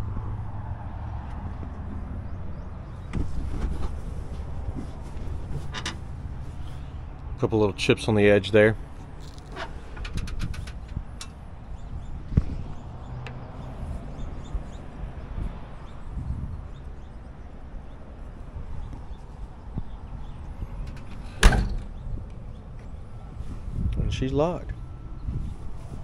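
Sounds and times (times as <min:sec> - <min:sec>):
car trunk lid slamming: 0:21.3 - 0:21.9.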